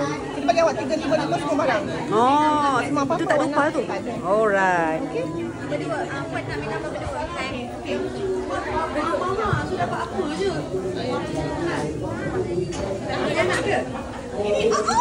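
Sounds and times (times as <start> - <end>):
overlapping chatter of people: 0.0 - 15.0.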